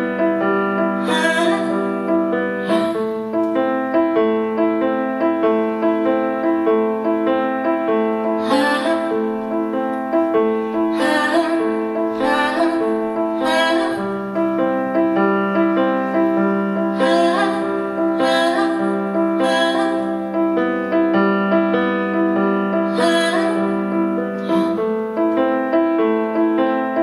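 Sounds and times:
grand piano chords: 0.0s - 27.0s
woman singing: 1.0s - 3.2s, 8.4s - 9.4s, 10.9s - 14.2s, 16.9s - 20.4s, 22.8s - 24.8s.

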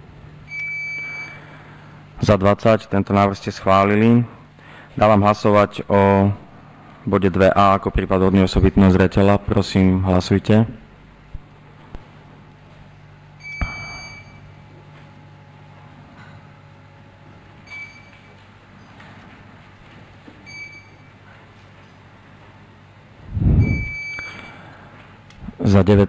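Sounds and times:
low steady hum: 0.0s - 26.0s
short electronic beeps: 0.5s - 1.4s, 13.4s - 14.5s, 23.6s - 24.6s.

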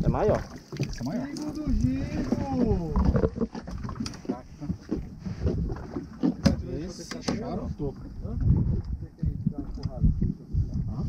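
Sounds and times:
water: 0.0s - 11.0s
wind rumble: 1.6s - 11.0s.

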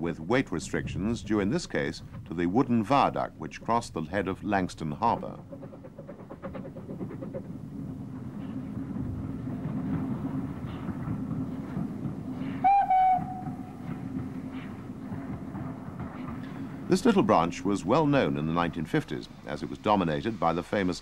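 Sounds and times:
train wheels rumbling on rails: 0.0s - 21.0s
steam whistle blast: 12.6s - 13.7s.

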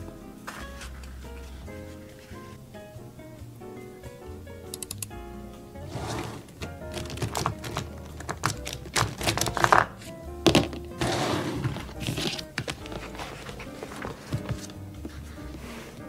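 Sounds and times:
background music: 0.0s - 16.0s
book pages rustling: 0.4s - 2.6s, 5.9s - 16.0s
pens clattering in a wire cup: 6.9s - 9.9s.

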